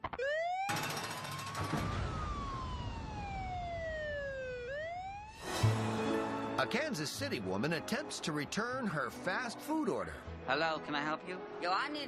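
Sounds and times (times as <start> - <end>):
siren wail: 0.0 - 5.6.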